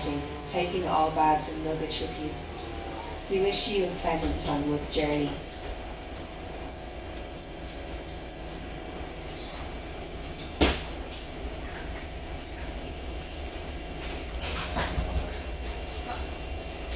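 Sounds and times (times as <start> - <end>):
bus diesel engine idling: 0.0 - 16.9.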